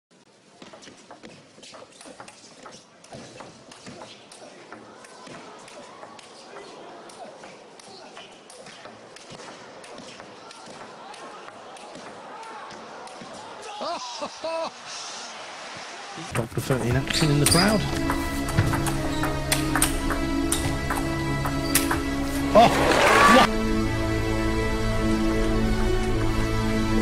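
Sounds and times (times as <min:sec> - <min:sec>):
murmur of crowd: 0:04.3 - 0:13.8.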